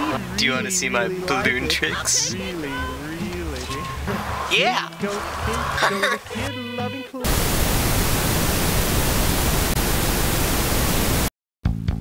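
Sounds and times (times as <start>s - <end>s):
television static hiss: 0.0s - 4.5s, 6.2s - 11.3s.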